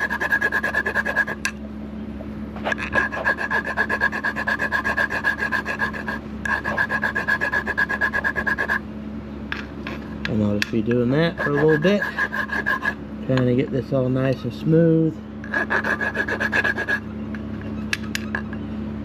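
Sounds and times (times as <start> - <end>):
hand file rasping on metal: 0.0 - 1.5, 2.7 - 8.8, 11.2 - 13.0, 15.5 - 17.0.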